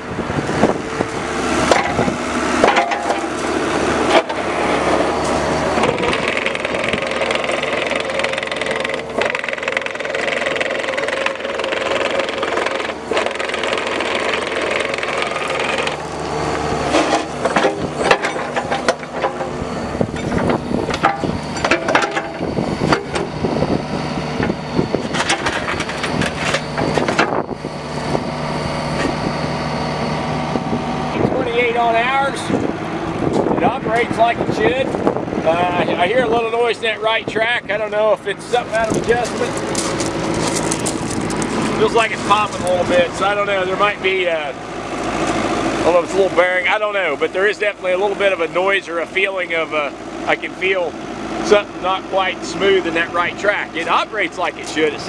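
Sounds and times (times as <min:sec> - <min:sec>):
diesel engine running: 0:00.0 - 0:55.0
track popping: 0:01.0 - 0:28.3, 0:36.2 - 0:48.1
stones crunching under tracks: 0:38.6 - 0:43.3.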